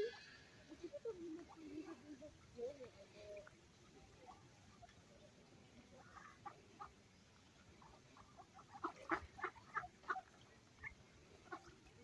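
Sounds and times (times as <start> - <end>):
ducks quacking: 6.0 - 7.0, 7.8 - 12.0.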